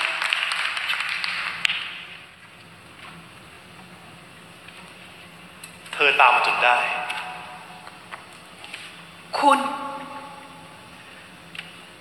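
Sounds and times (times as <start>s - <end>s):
audience applause: 0.0s - 2.0s
faint low hum: 0.0s - 12.0s.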